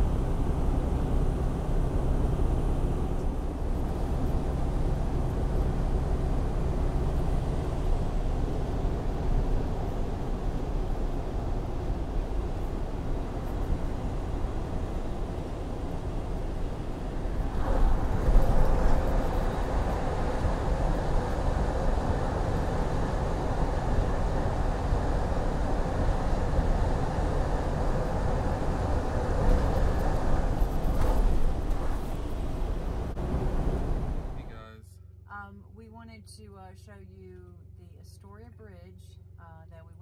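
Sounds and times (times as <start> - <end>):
truck road and engine noise: 0.0 - 39.4.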